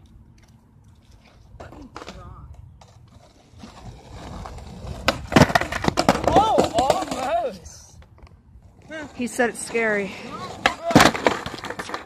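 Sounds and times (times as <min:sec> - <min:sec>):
skateboard wheels rolling on concrete: 0:00.0 - 0:12.0
skateboard slamming onto concrete: 0:04.8 - 0:07.4, 0:10.4 - 0:12.0.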